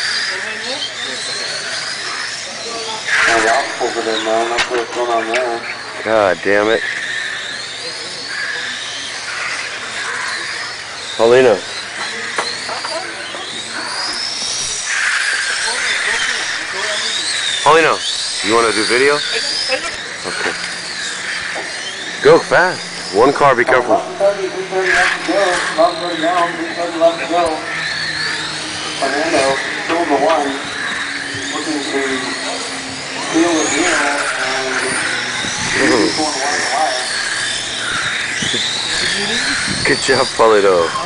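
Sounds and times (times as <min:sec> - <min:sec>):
people's voices: 0:00.0 - 0:41.0
rc car motors whining: 0:00.0 - 0:41.0.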